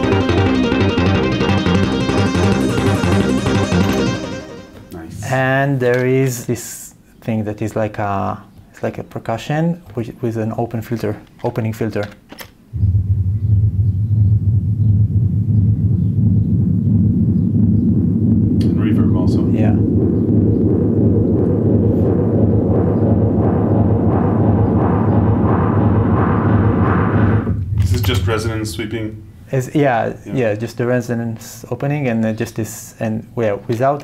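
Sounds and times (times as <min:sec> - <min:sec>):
deep synth bass pulsing: 0:00.0 - 0:05.3, 0:12.7 - 0:28.7
filtered noise percussion hits: 0:00.0 - 0:05.5, 0:12.7 - 0:29.5.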